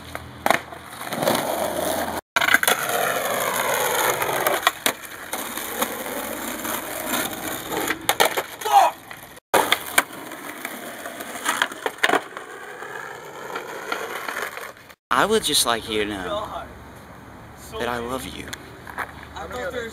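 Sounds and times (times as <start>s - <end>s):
skateboard clacking on concrete: 0.0s - 14.9s, 18.5s - 19.9s
skateboard wheels rolling on asphalt: 0.0s - 15.0s, 17.9s - 19.9s.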